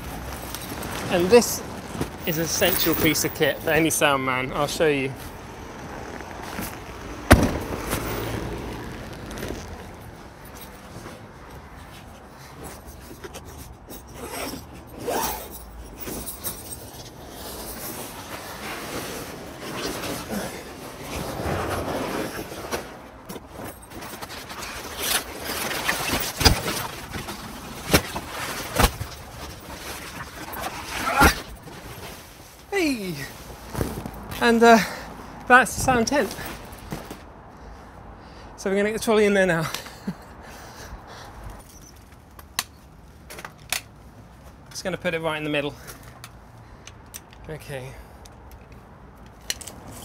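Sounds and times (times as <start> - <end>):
tent fabric rustling: 0.0 - 34.6
tent frame clicking: 6.0 - 10.7, 23.6 - 32.3.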